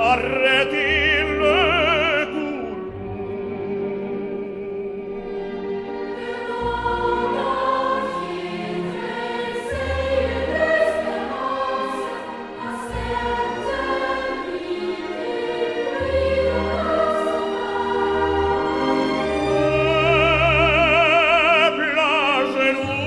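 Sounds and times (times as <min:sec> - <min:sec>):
orchestral accompaniment: 0:00.0 - 0:23.0
children's choir singing: 0:05.8 - 0:21.4.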